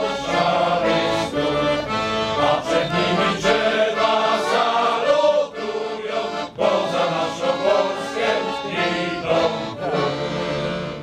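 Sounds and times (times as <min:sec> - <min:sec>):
men's choir singing: 0:00.0 - 0:11.0.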